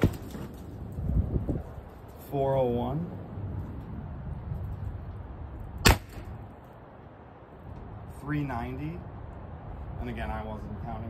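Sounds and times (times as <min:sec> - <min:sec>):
sharp pistol shot: 0:05.8 - 0:06.4.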